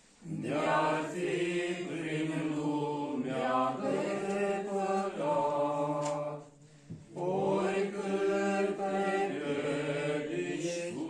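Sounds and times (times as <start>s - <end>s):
men singing a slow hymn: 0.2s - 11.0s.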